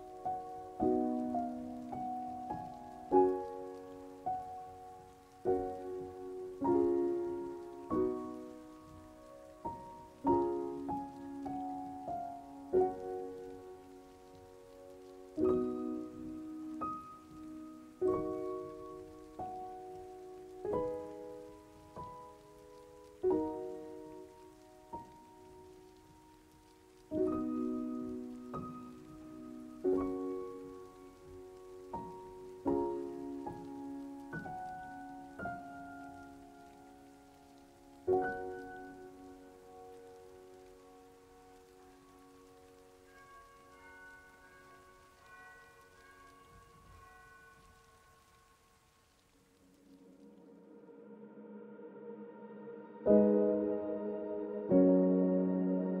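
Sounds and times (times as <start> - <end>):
piano playing soft chords: 0.0 - 56.0.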